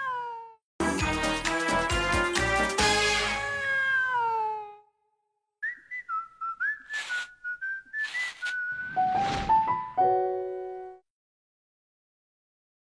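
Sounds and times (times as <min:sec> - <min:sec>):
cartoon theme music: 0:00.8 - 0:03.6
person whistling a tune: 0:05.6 - 0:09.1.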